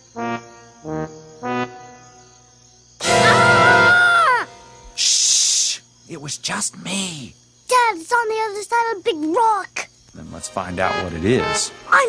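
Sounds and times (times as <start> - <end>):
staccato cartoon music notes: 3.0 - 4.8
brass-like blast sliding down: 3.0 - 5.0
cymbal-like hiss: 3.0 - 5.8.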